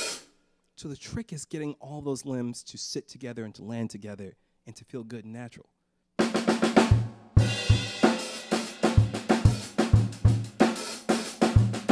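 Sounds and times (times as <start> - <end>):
drum kit funk groove: 0.0 - 0.3, 6.2 - 11.9.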